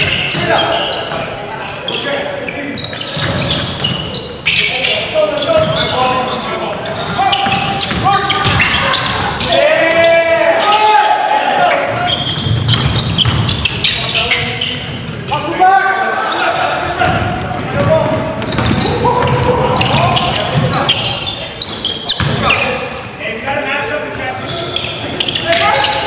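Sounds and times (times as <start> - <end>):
sneakers squeaking: 0.0 - 15.6, 16.2 - 23.2, 23.8 - 26.0
players shouting: 6.9 - 12.4, 15.3 - 21.3
basketball bouncing: 7.4 - 8.8, 12.4 - 13.7, 17.0 - 20.8.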